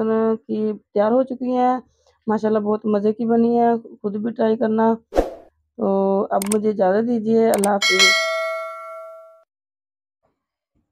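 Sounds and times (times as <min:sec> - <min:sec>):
bright bell ding: 0:07.6 - 0:09.4.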